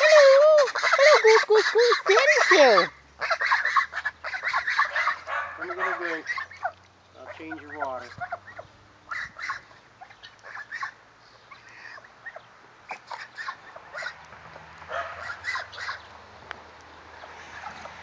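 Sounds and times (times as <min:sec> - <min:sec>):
geese feeding at metal dish: 0:00.0 - 0:16.1
soft geese calls: 0:00.0 - 0:16.1.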